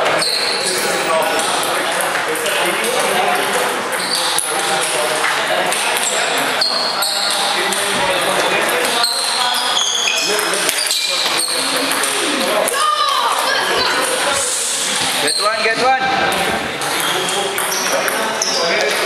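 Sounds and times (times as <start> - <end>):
people talking: 0.0 - 19.0
table tennis balls clicking: 10.2 - 14.2.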